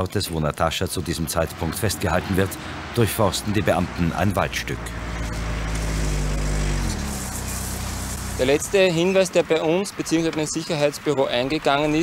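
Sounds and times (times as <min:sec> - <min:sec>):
car engine driving by: 0:00.9 - 0:12.0.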